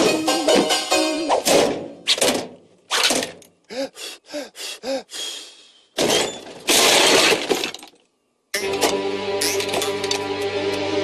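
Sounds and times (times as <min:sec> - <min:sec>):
cartoon glass breaking crash: 0:06.0 - 0:07.8.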